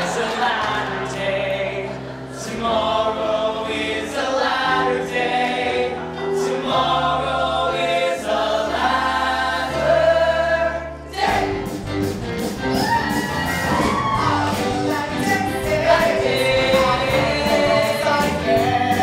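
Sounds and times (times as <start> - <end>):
choir singing held chords: 0.0 - 11.6, 14.4 - 19.0.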